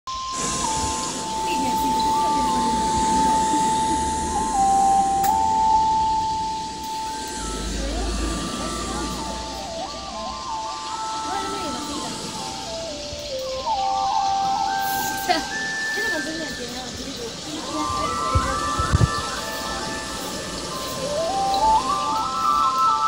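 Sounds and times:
thin electronic melody: 0:00.1 - 0:23.0
murmur of people talking: 0:00.6 - 0:23.0.

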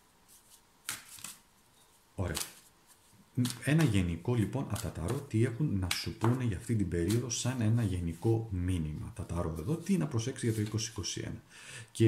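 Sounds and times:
cards rustling: 0:00.3 - 0:01.4, 0:02.2 - 0:08.4.

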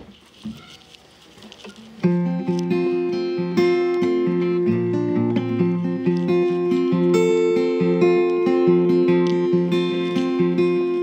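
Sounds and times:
guitar handling clicks and rustles: 0:00.0 - 0:11.0
guitar string sounding: 0:02.0 - 0:11.0.

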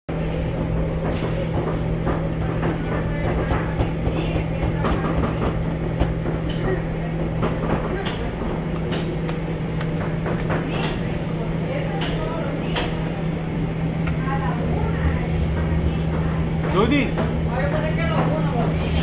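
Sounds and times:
machinery hum and rumble: 0:00.1 - 0:19.0
fingertips tapping dough: 0:00.5 - 0:11.0.

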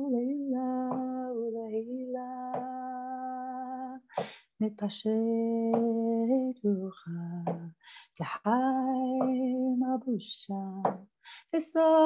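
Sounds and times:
woman singing a chant: 0:00.0 - 0:12.0.

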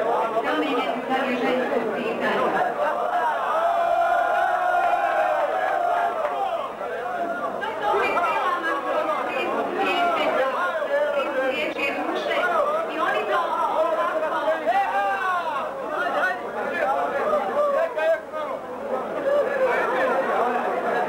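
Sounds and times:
crowd of men chattering: 0:00.0 - 0:21.0.

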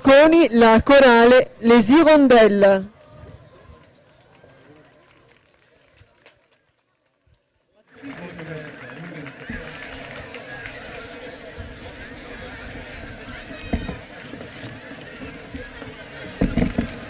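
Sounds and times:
murmur of low voices: 0:00.0 - 0:17.0.

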